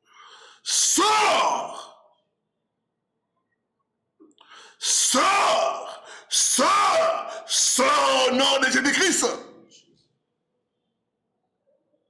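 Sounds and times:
person shouting cry: 0.7s - 1.8s, 4.9s - 8.4s.

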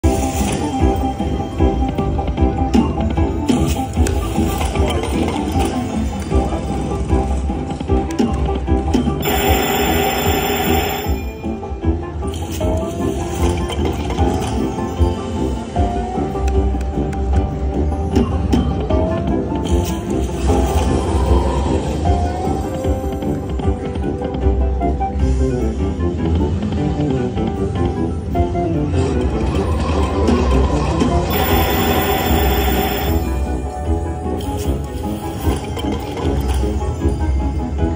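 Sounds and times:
slot machine bonus music: 9.2s - 11.4s, 31.3s - 33.6s.

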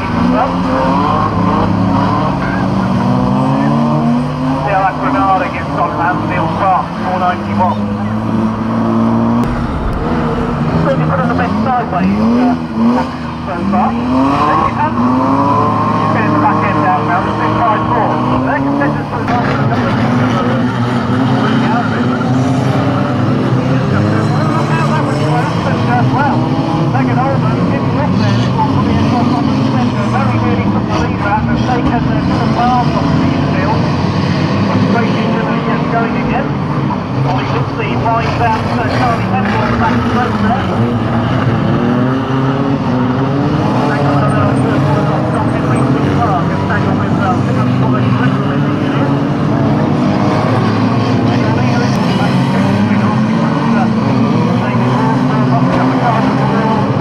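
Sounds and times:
racing car engines revving: 0.0s - 57.0s.

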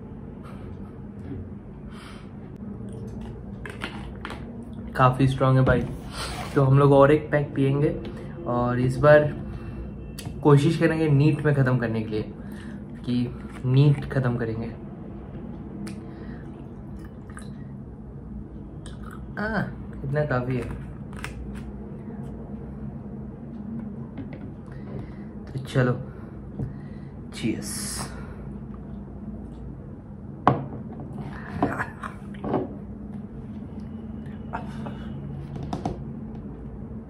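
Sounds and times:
liquid pouring into glass: 16.2s - 17.7s.

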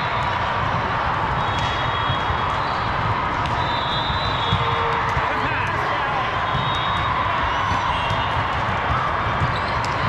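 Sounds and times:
indoor hall crowd din: 0.0s - 10.0s.

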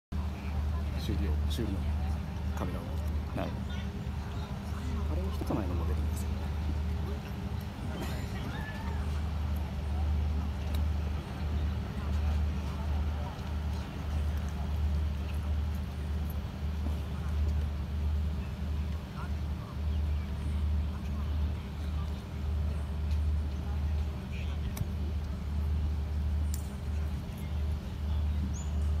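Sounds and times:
steady low hum: 0.2s - 29.0s.

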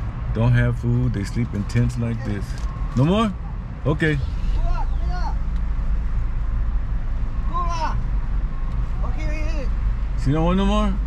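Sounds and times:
car engine rumble from inside: 0.0s - 11.0s
voices: 0.4s - 5.6s, 7.4s - 8.1s, 9.0s - 11.0s.

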